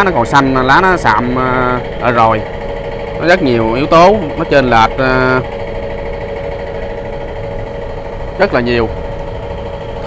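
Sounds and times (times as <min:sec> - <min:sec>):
steady machine hum: 0:00.0 - 0:10.0.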